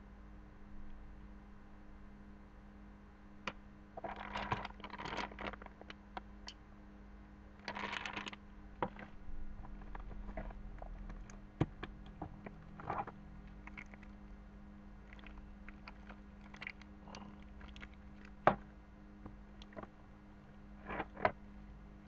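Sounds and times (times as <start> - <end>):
low steady hum: 0.0 - 22.0
paper and plastic wrap rustling: 4.0 - 5.9, 7.6 - 9.2.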